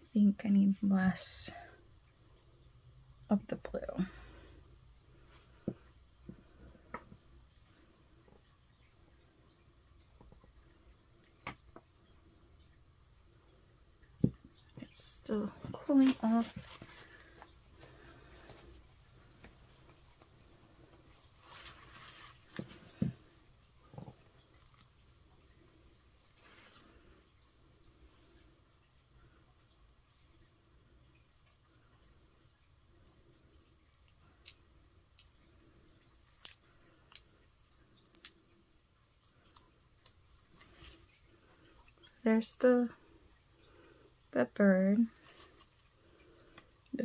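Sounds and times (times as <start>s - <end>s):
soft rustle: 14.9s - 28.4s, 40.4s - 42.2s, 45.1s - 46.8s.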